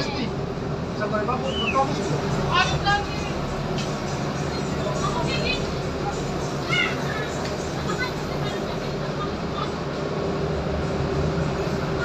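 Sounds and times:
faint voices: 0:00.0 - 0:10.5
ship engine droning: 0:00.0 - 0:12.0
wind: 0:00.0 - 0:12.0.

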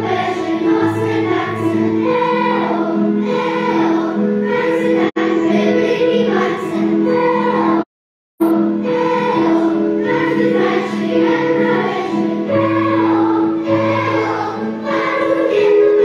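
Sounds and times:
children's choir singing: 0:00.0 - 0:16.0.

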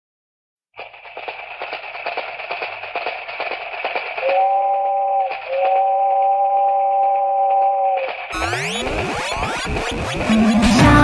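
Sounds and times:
plastic dominoes clicking: 0:00.8 - 0:04.4
steady electronic tone: 0:04.9 - 0:11.0.

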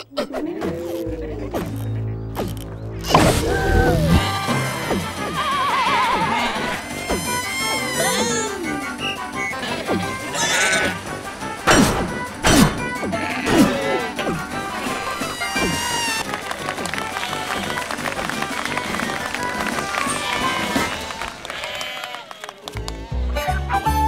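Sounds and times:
upbeat cartoon music: 0:00.0 - 0:24.0
cartoon character vocalizations: 0:07.3 - 0:08.9.

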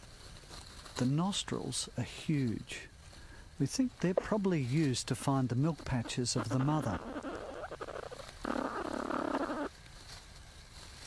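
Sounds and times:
young platypus raspy call: 0:05.6 - 0:09.8.

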